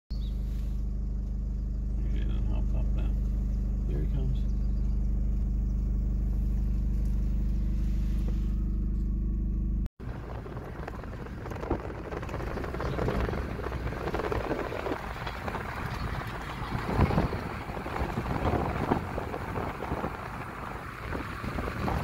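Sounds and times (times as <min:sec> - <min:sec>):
car engine idling: 0:00.1 - 0:22.0
tyre and wind road noise: 0:00.1 - 0:22.0.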